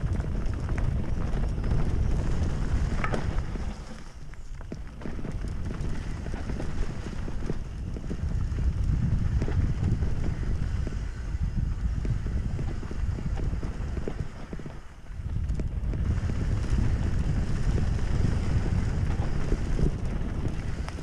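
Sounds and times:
mountain bike rumble and rattle: 0.0s - 21.0s
wind buffeting microphone: 0.0s - 21.0s.

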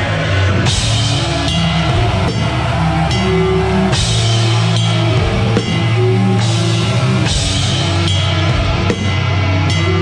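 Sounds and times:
heavy metal band playing live: 0.0s - 10.0s
cymbal crashes: 0.7s - 9.1s.

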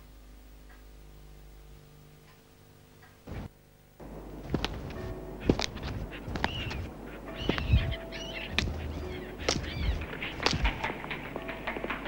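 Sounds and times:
birds calling: 4.3s - 11.4s
sharp knocks: 4.4s - 11.2s.

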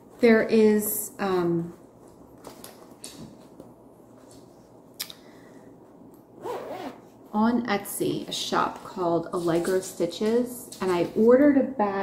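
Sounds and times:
zipper being pulled: 6.4s - 7.2s.

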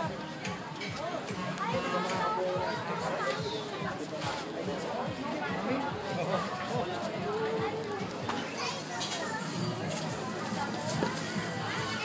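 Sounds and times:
children and adults chattering: 0.0s - 12.0s.

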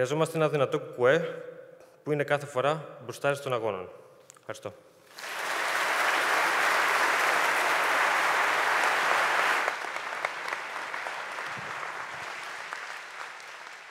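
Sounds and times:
audience applauding: 5.1s - 13.9s.

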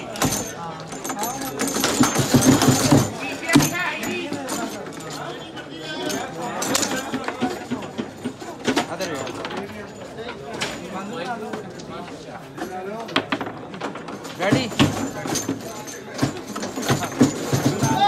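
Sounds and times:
foosball players clacking on ball: 0.0s - 5.4s, 6.0s - 18.0s
crowd voices: 0.0s - 18.0s.

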